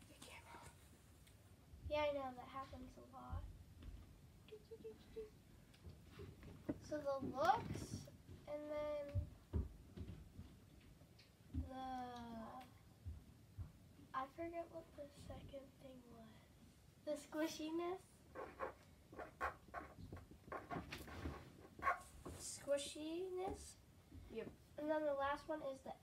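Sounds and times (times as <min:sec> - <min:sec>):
faint whispering: 0:00.0 - 0:00.8
girl's hesitant voice: 0:04.5 - 0:05.4.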